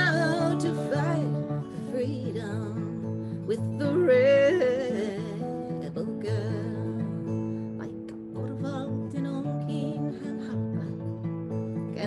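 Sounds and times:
woman singing with vibrato: 0:00.0 - 0:11.2
acoustic guitar: 0:00.0 - 0:12.0.

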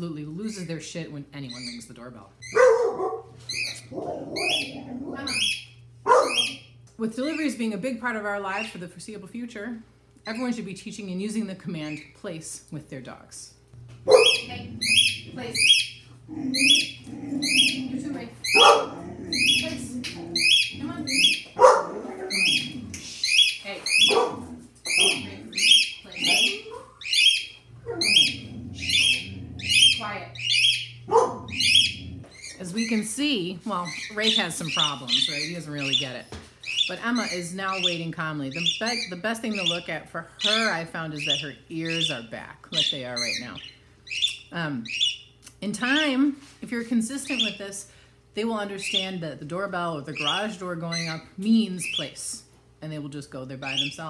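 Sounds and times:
cockatiel chirping: 0:05.3 - 0:06.7, 0:24.9 - 0:32.6.

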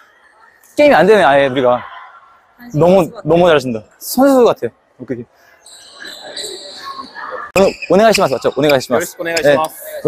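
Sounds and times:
hall background noise: 0:00.0 - 0:10.0
sneakers squeaking on wooden floor: 0:05.6 - 0:08.9.

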